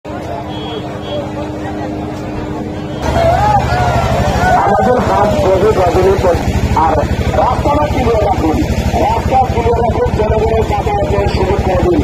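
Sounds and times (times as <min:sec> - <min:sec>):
crowd chatter: 0:00.1 - 0:12.0
vehicle engine running: 0:00.1 - 0:12.0.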